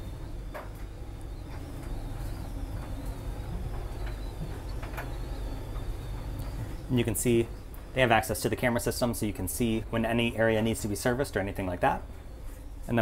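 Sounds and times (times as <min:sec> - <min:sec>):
faint wavering high whine: 0:00.0 - 0:13.0
steady low hum: 0:00.0 - 0:13.0.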